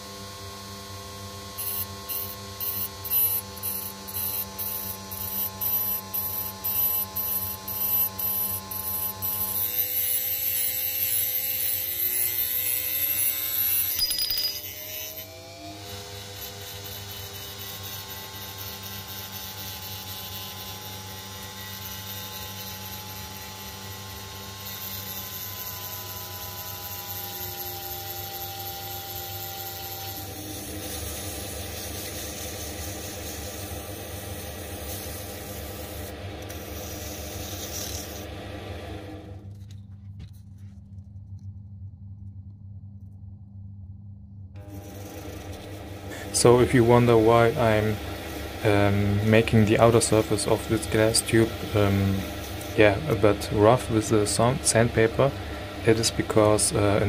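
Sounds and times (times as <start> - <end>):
lathe motor whine: 0.0 - 39.5, 44.6 - 57.0
cut-off disc grinding glass: 1.4 - 38.3, 44.6 - 57.0.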